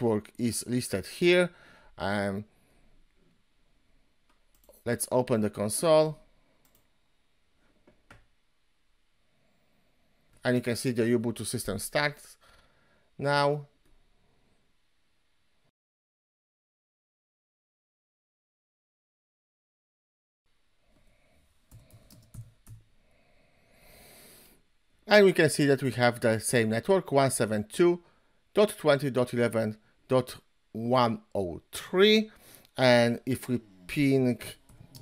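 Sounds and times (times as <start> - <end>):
computer mouse clicks: 6.6 - 6.9, 21.7 - 22.8, 34.6 - 35.0
person speaking: 10.4 - 12.4, 25.0 - 35.0.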